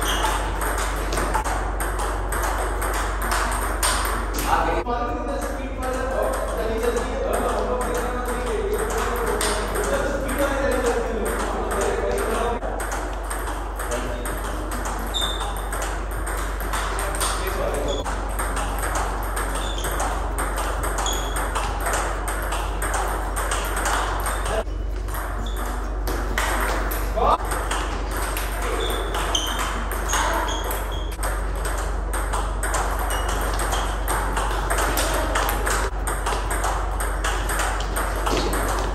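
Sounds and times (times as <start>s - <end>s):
table tennis ball clicking: 0.0s - 4.8s, 5.4s - 38.9s.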